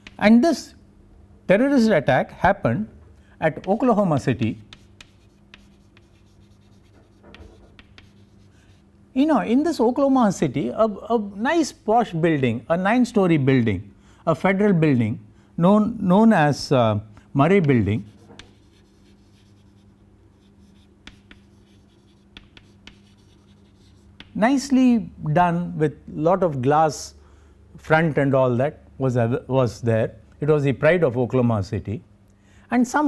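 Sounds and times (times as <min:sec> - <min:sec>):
chalk tapping and scratching: 0:00.0 - 0:00.3, 0:03.5 - 0:08.9, 0:17.6 - 0:24.4
low steady hum: 0:00.0 - 0:33.0.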